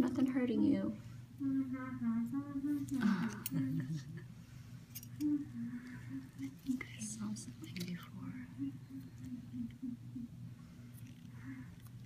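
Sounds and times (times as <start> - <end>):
person humming a tune: 1.4 - 4.2, 5.1 - 7.2, 8.2 - 10.4.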